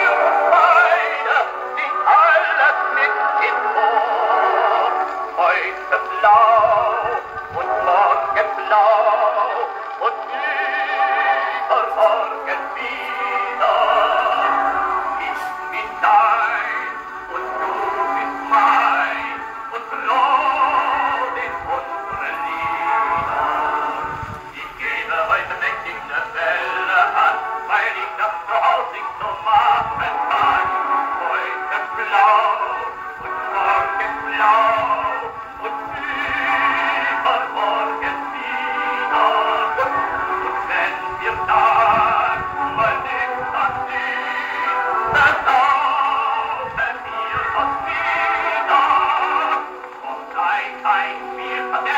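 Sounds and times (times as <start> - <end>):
gramophone record with vibrato singer: 0.0 - 51.9.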